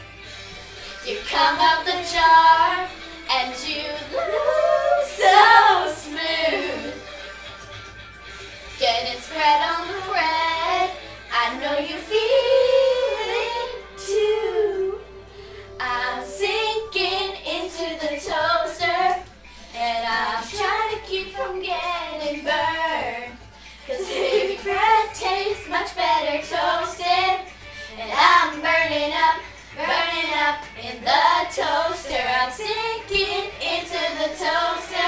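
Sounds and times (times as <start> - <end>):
girls singing together: 1.0 - 7.0, 8.8 - 15.2, 15.8 - 35.0.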